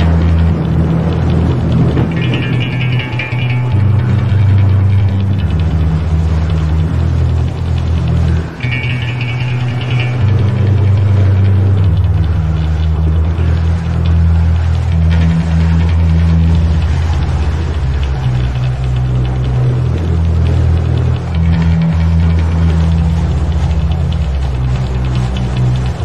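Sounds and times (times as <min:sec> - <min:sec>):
black metal music: 0:00.0 - 0:26.0.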